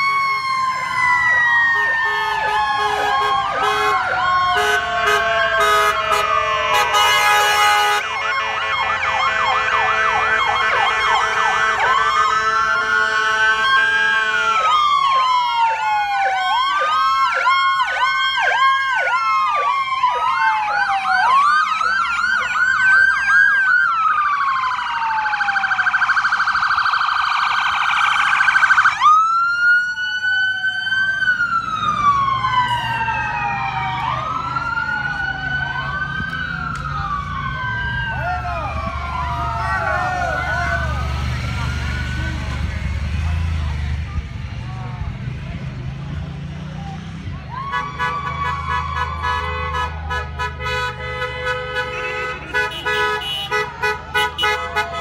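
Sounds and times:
emergency vehicle sirens wailing: 0.0s - 55.0s.

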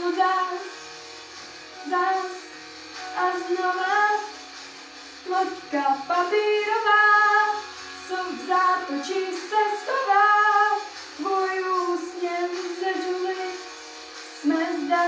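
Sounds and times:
girl singing pop: 0.0s - 1.0s, 1.8s - 4.4s, 5.2s - 15.0s.

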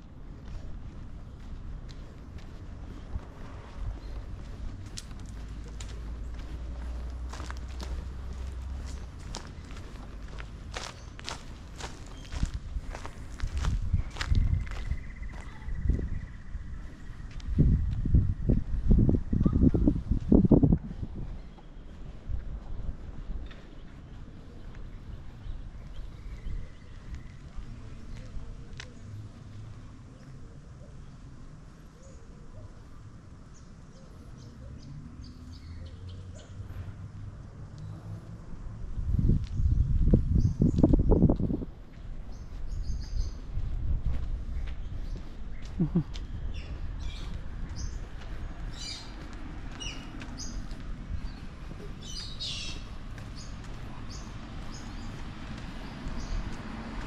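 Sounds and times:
footsteps on concrete: 0.3s - 16.1s, 39.1s - 57.0s
small birds chirping: 0.4s - 20.4s, 21.3s - 57.0s.

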